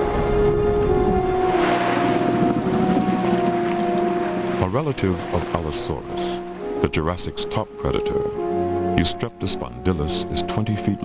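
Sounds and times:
orchestral music: 0.0 - 11.0
rushing water: 0.0 - 11.0.

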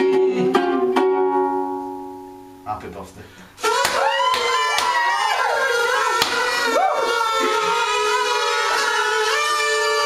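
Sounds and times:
kazoos buzzing: 3.6 - 10.0.

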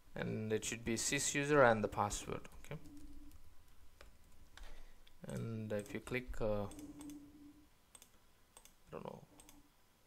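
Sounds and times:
faint computer mouse clicks: 7.9 - 8.8.

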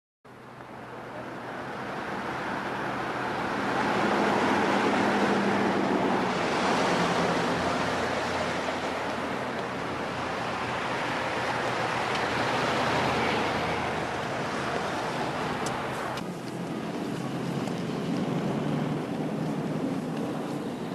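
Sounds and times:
cars driving past: 0.3 - 20.9
low engine hum: 0.3 - 20.9.

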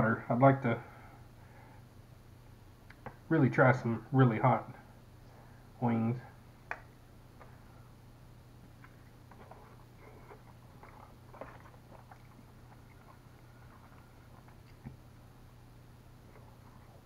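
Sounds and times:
chewing and mouth smacking: 8.6 - 15.3, 16.2 - 17.0.

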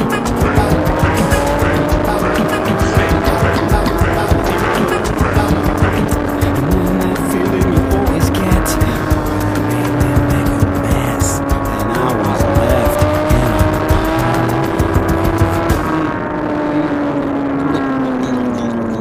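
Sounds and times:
motorcycle engine running at speed: 0.0 - 19.0.

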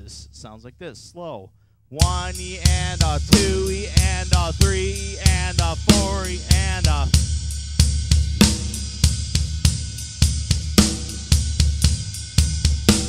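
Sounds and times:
bass drum strokes: 2.0 - 13.0
ride cymbal pattern: 2.0 - 13.0.

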